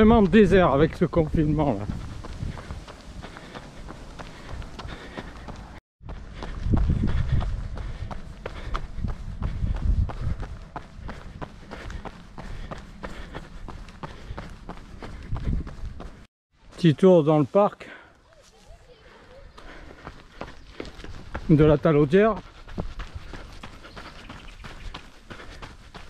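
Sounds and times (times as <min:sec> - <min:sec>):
running footsteps on asphalt: 0:00.0 - 0:16.8, 0:17.8 - 0:26.0.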